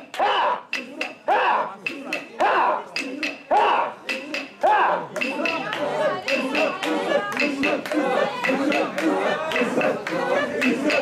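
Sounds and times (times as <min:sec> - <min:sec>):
people chanting in rhythm: 0:00.0 - 0:11.0.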